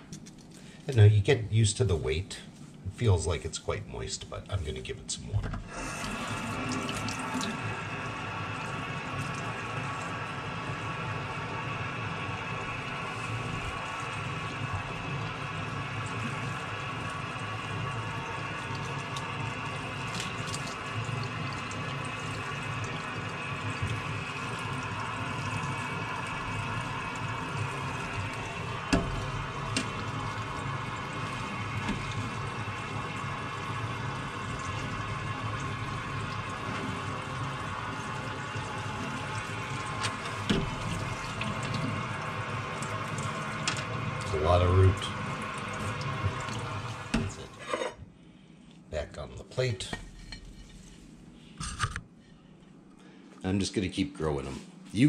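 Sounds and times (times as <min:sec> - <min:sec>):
tap water splashing into a sink: 0:05.5 - 0:10.4, 0:12.4 - 0:47.5.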